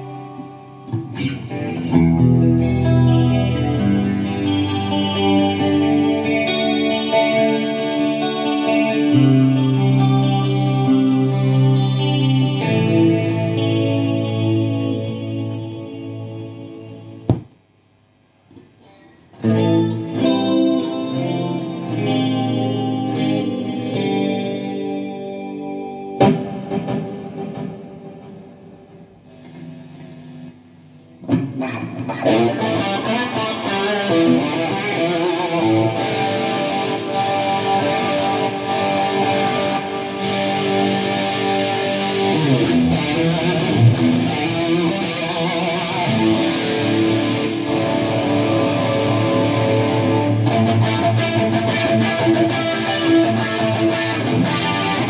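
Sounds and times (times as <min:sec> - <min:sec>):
electric guitar chords ringing: 0:00.0 - 0:17.6, 0:18.7 - 0:55.0
distorted electric guitar riffing: 0:00.0 - 0:55.0.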